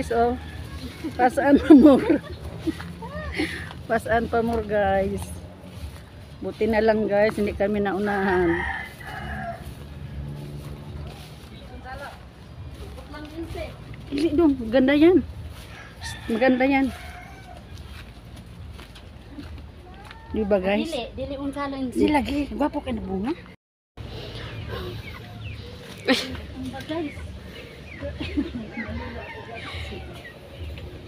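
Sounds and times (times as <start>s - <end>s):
low engine hum: 0.0s - 31.0s
chickens clucking: 24.1s - 31.0s.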